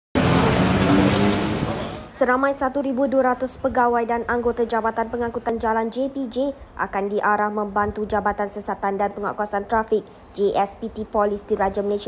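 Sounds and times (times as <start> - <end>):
road traffic noise: 0.2 - 12.0.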